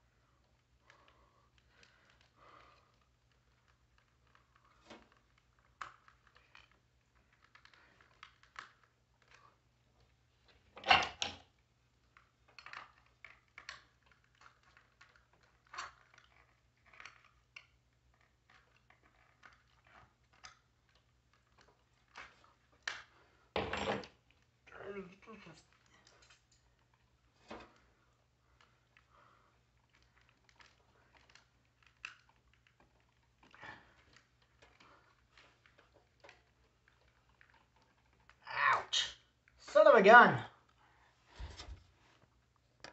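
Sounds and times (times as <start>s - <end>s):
plastic clicks and scrapes: 0.5s - 9.6s, 12.0s - 23.4s, 25.7s - 38.4s.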